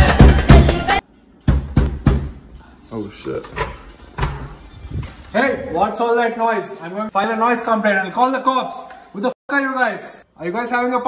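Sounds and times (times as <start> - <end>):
knocks on a door: 1.5 - 2.4.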